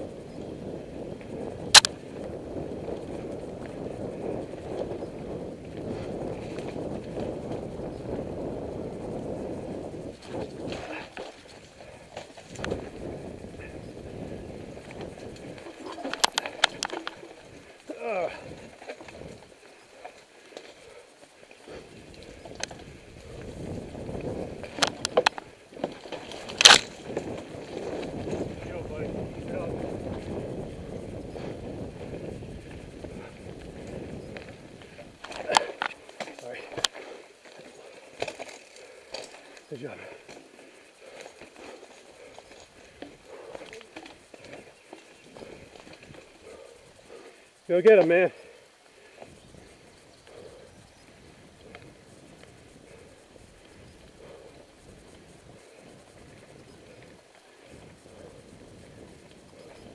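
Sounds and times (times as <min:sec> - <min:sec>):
bike rattling: 0:00.0 - 0:59.9
bike tyres on dirt trail: 0:00.0 - 0:59.9.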